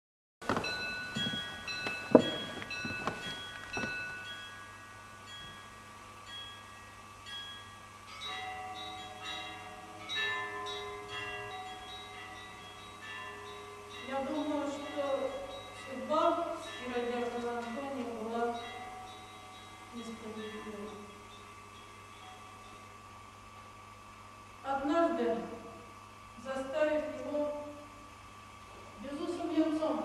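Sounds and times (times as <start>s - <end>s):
struck bells ringing: 0.4s - 24.5s
sustained bell tones: 0.5s - 26.2s.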